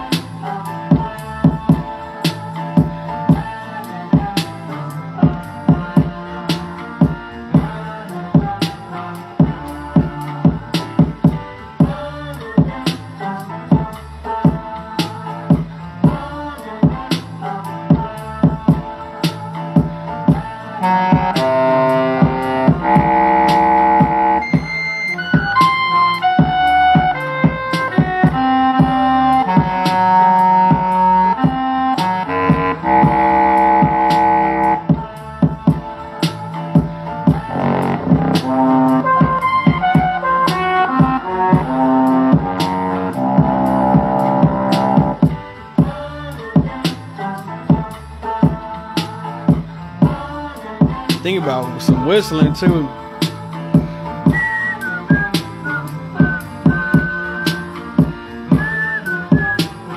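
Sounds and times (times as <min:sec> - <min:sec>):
drum machine beat: 0:00.0 - 0:03.6, 0:04.2 - 0:04.5, 0:05.2 - 0:07.8, 0:08.4 - 0:08.8, 0:09.4 - 0:12.0, 0:12.6 - 0:13.0, 0:13.7 - 0:17.2, 0:17.9 - 0:46.0, 0:46.6 - 0:46.9, 0:47.7 - 0:50.2, 0:50.8 - 0:59.9
sampled horn chords: 0:19.8 - 0:35.9, 0:36.7 - 0:45.5, 0:51.2 - 0:59.9.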